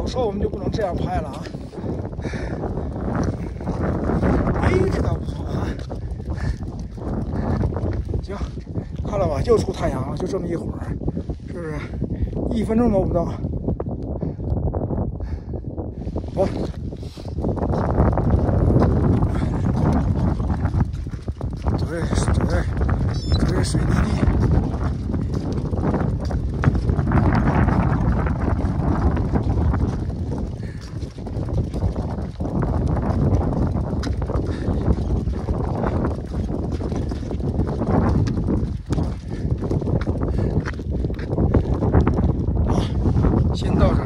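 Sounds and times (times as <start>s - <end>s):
wind buffeting microphone: 0.0s - 44.0s.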